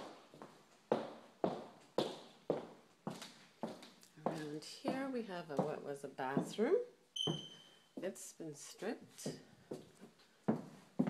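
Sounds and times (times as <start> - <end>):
footsteps on hard wood floor: 0.0 - 8.2, 9.1 - 11.0.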